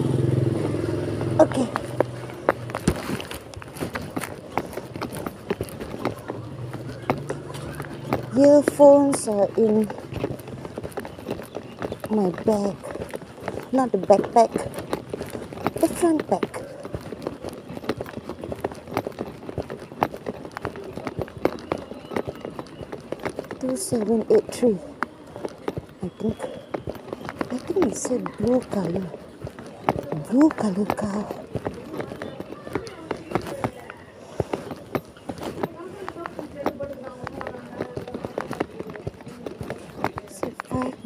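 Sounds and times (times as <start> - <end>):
footsteps on paved ground: 0.0 - 41.0.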